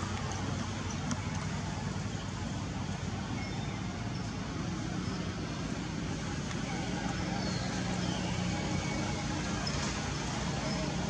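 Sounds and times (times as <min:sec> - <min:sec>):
low rumble like distant traffic: 0:00.0 - 0:11.0.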